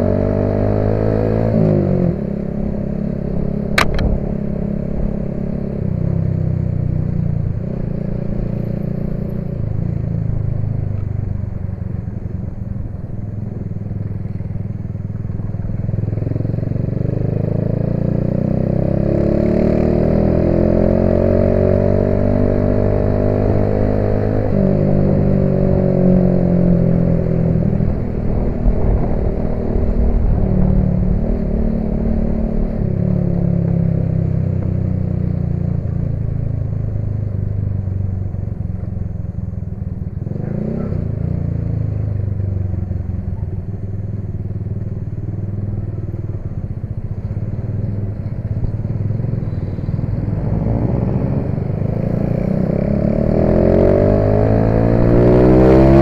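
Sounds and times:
motorcycle engine accelerating: 0.0s - 56.0s.

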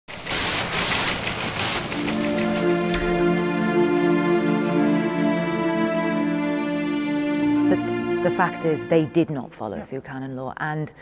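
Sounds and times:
harsh static hiss: 0.1s - 2.0s.

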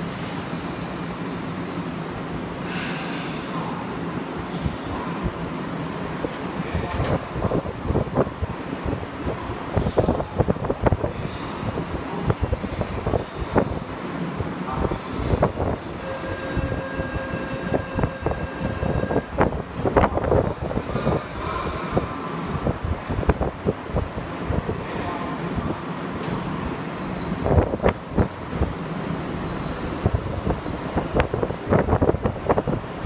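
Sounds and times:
electric train hum: 0.0s - 33.0s
brief hiss: 2.6s - 3.4s.

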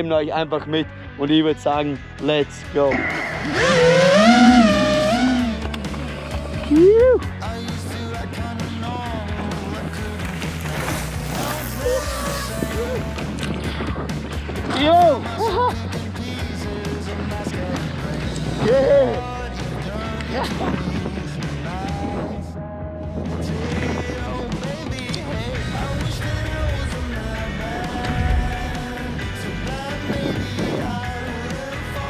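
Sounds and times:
background music: 0.0s - 32.0s
person laughing: 6.4s - 7.2s, 15.3s - 15.8s
bike tyres rolling on gravel: 9.1s - 13.2s.

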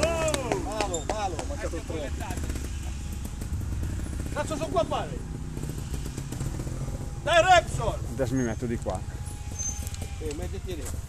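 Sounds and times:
motorcycle engine idling: 0.0s - 11.0s.

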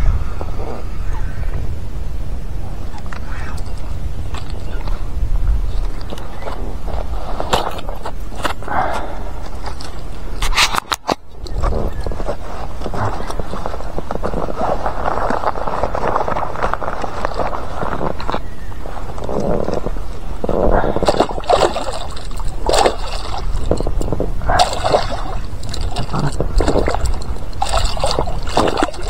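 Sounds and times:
water sloshing and splashing: 2.8s - 29.0s
fish thrashing splashes: 19.7s - 29.0s.

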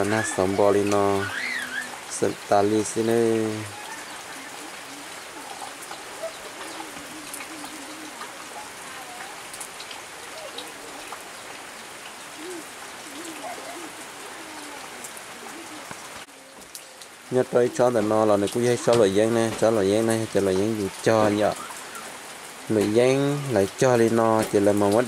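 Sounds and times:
faint indistinct calls: 0.0s - 2.1s, 3.2s - 17.1s
steady rain falling: 0.0s - 25.0s.

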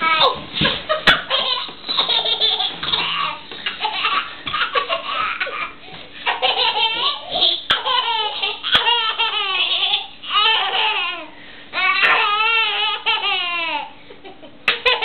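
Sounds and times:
young children laughing: 0.4s - 15.0s
baby laughing: 0.6s - 14.0s, 14.7s - 15.0s.

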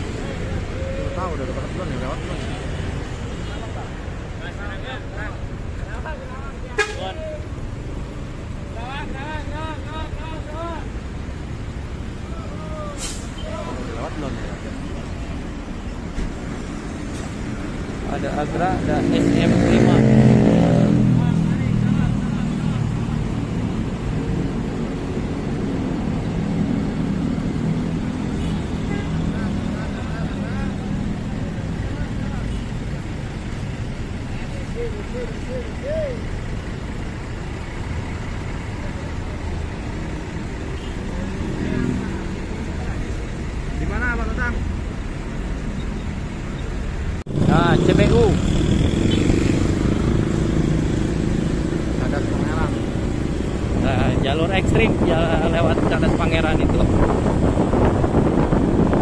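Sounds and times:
diesel bus engines passing: 0.0s - 59.0s
moving vehicle rumble: 0.0s - 59.0s.

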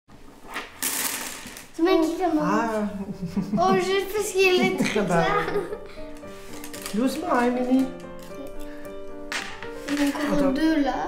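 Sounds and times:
wooden sticks clattering on table: 0.5s - 1.8s, 9.3s - 10.4s
child speaking: 1.8s - 2.9s, 3.6s - 5.8s, 9.9s - 11.0s.

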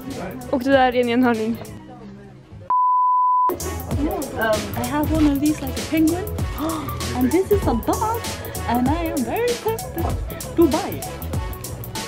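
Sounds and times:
censor bleep: 2.7s - 3.5s.

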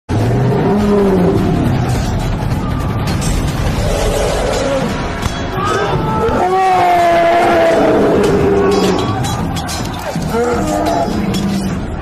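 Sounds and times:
battle din: 0.2s - 12.0s.

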